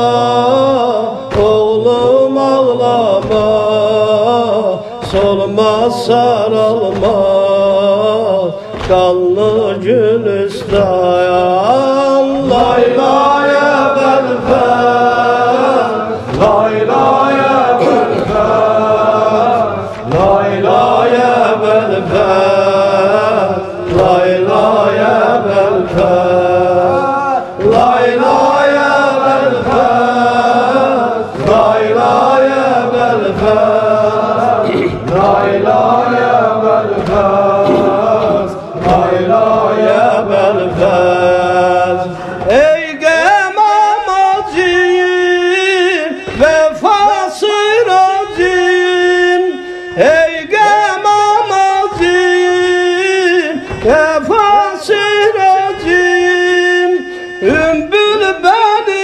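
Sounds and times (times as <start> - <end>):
voices chanting a lament: 0.0 - 59.0.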